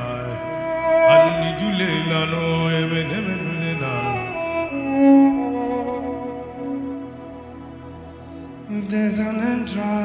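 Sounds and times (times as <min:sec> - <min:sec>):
sustained string-like tones: 0:00.0 - 0:10.0.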